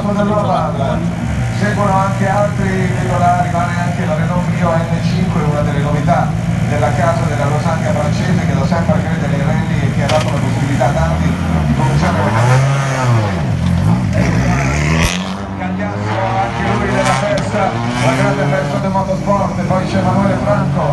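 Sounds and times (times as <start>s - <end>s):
rally car engine revving: 0.0s - 20.9s.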